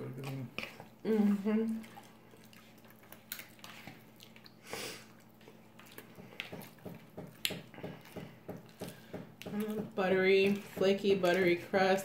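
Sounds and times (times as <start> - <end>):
person chewing: 0.0 - 9.8.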